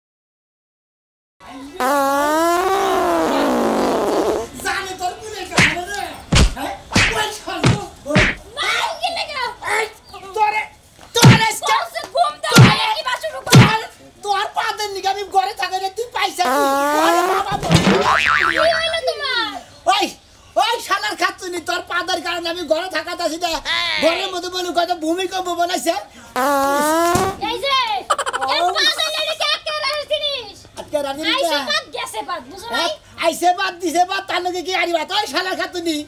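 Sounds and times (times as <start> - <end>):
cartoon boing: 16.5 - 19.0.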